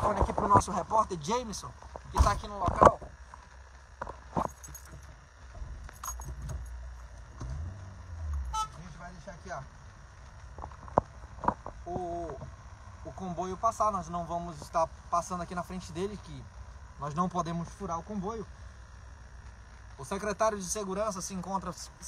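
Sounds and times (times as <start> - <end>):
car rumble inside cabin: 5.5 - 9.2
short horn-like tone: 8.2 - 9.1.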